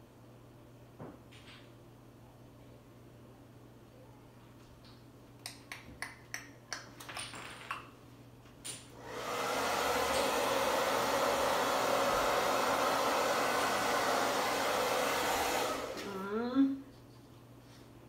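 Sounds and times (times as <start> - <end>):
hair dryer blowing: 9.0 - 16.3.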